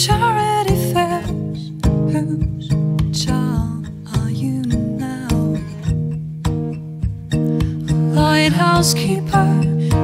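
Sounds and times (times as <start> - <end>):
woman singing: 0.0 - 6.2, 7.0 - 10.0
acoustic guitar picking: 0.0 - 10.0.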